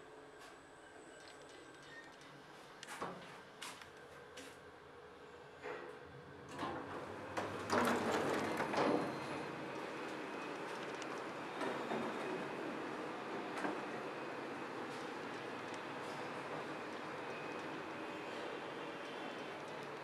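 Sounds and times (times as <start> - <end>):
lift doors rattling open: 6.5 - 10.3.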